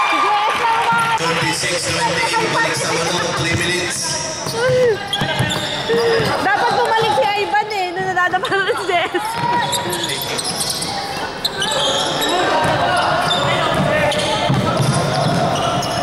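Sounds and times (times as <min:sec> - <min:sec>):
voices and shouts in hall: 0:00.0 - 0:16.0
basketball bouncing on wooden court: 0:04.4 - 0:06.4, 0:12.6 - 0:16.0.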